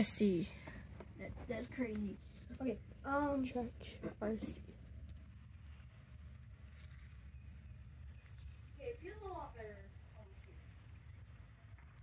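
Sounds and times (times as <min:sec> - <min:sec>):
faint low rumble: 0:00.0 - 0:12.0.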